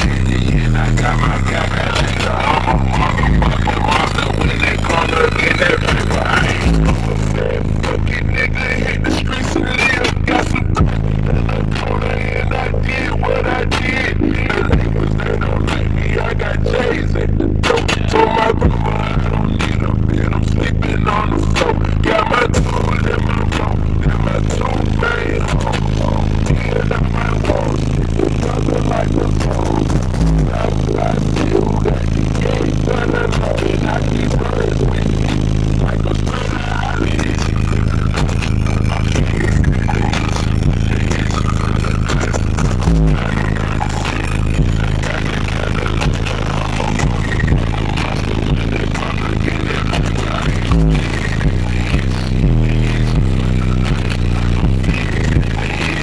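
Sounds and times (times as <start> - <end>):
bass-heavy music from car speakers: 0.0 - 56.0.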